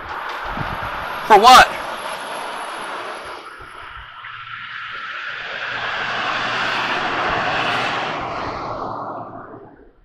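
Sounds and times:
vehicle passing by: 0.0s - 10.0s.

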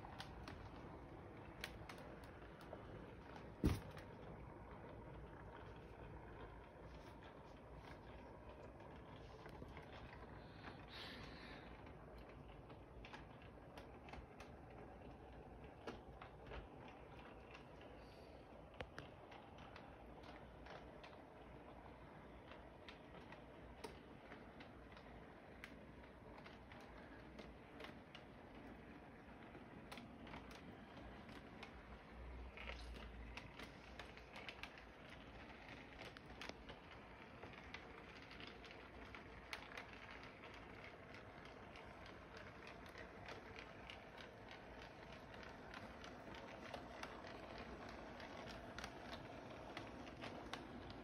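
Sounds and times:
wheels clicking on rails: 0.0s - 51.0s
toy train motor whir: 4.9s - 51.0s.

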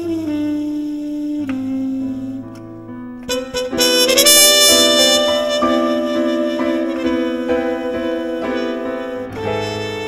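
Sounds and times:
melody line holding long notes: 3.2s - 10.0s.

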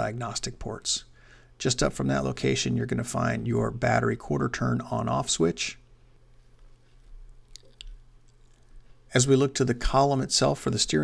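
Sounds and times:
faint low hum: 0.0s - 11.0s
mouth clicks: 7.3s - 9.0s.

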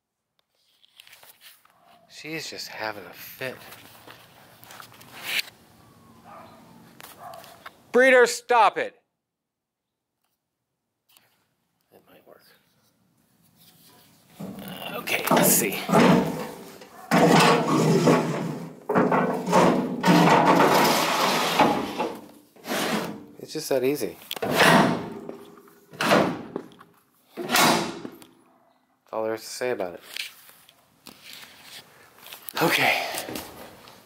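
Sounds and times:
metal ramp scraping and rattling: 14.3s - 23.4s, 24.4s - 26.7s, 27.4s - 28.2s.

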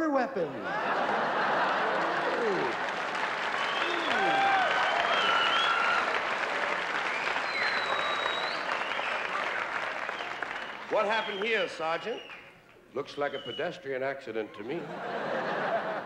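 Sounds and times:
audience laughing: 0.6s - 4.5s, 14.6s - 16.0s
audience applauding: 0.7s - 12.8s.

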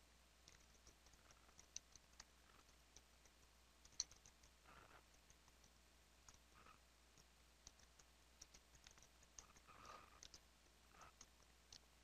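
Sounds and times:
faint keyboard typing: 0.4s - 12.0s.

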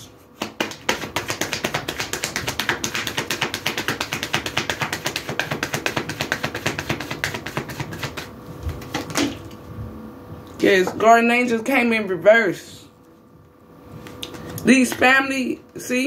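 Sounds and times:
cards being shuffled: 0.4s - 9.4s.

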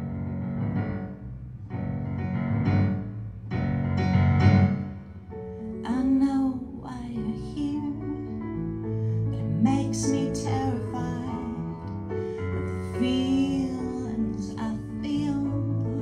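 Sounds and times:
digital piano playing chords: 0.0s - 16.0s
woman singing: 5.6s - 8.6s, 9.3s - 16.0s.

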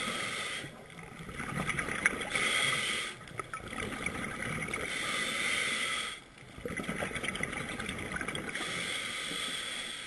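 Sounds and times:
diver breathing through regulator: 0.0s - 0.8s, 2.2s - 3.3s, 4.8s - 6.3s, 8.5s - 10.0s
exhaled bubbles rushing: 1.2s - 2.4s, 3.4s - 4.9s, 6.6s - 8.6s.

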